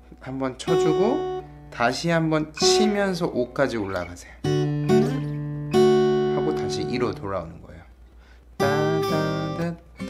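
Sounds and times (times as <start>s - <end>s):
acoustic guitar fingerpicking: 0.6s - 7.3s, 8.1s - 10.0s.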